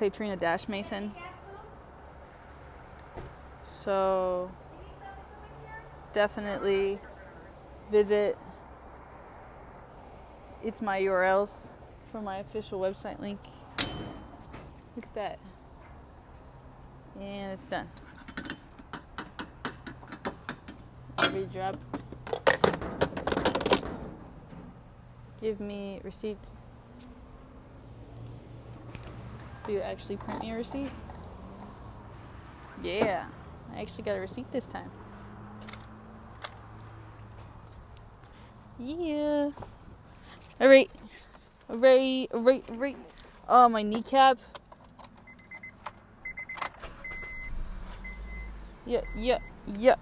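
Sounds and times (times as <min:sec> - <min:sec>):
car warning chime beeping: 0:45.2 - 0:50.0.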